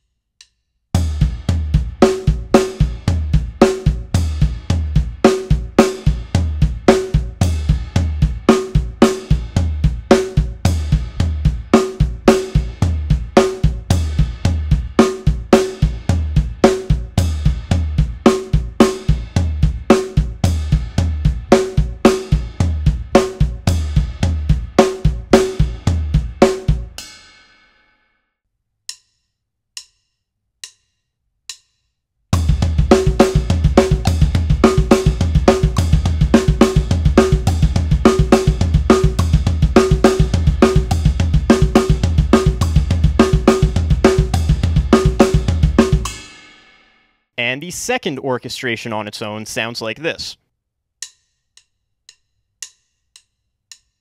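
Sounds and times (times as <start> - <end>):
drum kit playing: 1.0 - 27.2, 32.4 - 46.4, 47.4 - 50.3.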